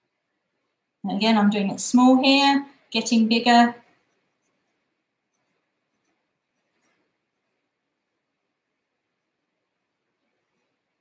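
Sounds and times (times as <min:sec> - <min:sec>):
marker pen scratching on paper: 0:03.6 - 0:08.1.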